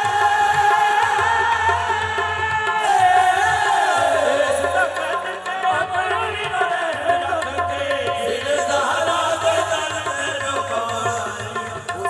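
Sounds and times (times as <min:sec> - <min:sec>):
harmonium chords: 0:00.0 - 0:12.0
voices singing: 0:00.0 - 0:12.0.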